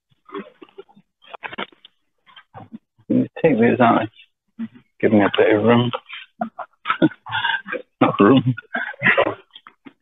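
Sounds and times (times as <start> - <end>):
person talking: 2.4 - 9.5.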